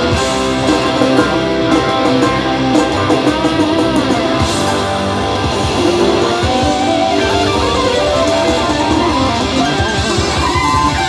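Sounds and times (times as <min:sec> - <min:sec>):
electric guitar soloing: 0:00.0 - 0:11.0
live rock band playing: 0:00.0 - 0:11.0.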